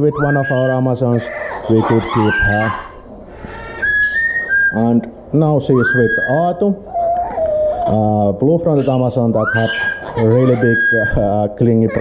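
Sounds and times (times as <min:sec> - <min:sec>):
parrot whistling: 0:00.1 - 0:05.1, 0:05.7 - 0:07.9, 0:08.8 - 0:11.3.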